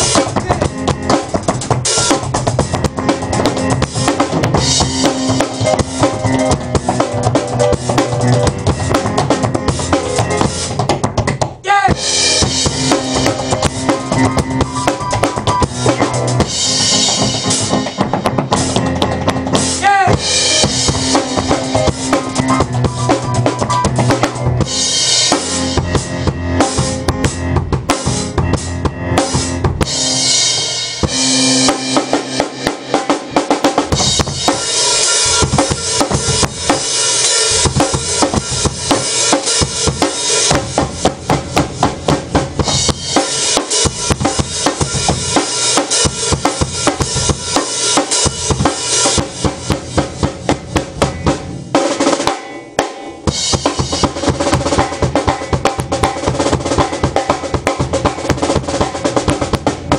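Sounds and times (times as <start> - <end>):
drum kit: 0.0 - 59.9
held keyboard notes: 0.0 - 59.9
tap dancing: 10.8 - 11.6.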